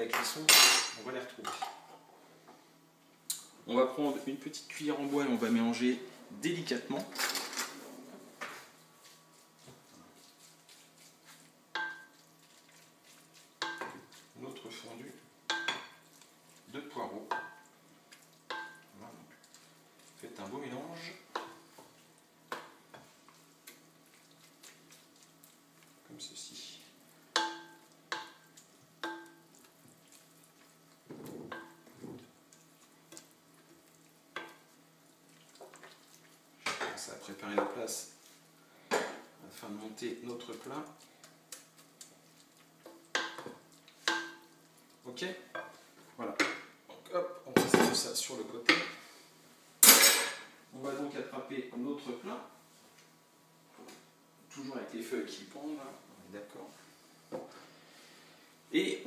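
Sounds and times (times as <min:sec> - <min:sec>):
spoon stirring wet mixture: 0:08.6 - 0:38.6, 0:39.3 - 0:49.2.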